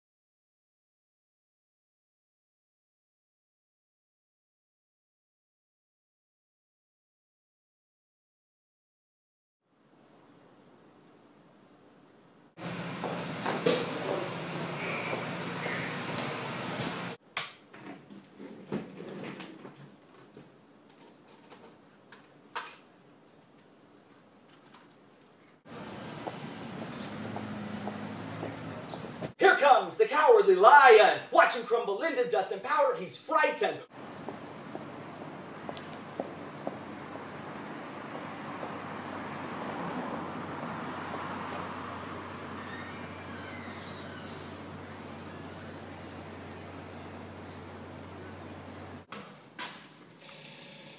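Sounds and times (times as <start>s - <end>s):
subway station noise: 12.6s - 17.2s
traffic noise: 12.6s - 17.2s, 25.6s - 29.5s, 33.9s - 49.1s.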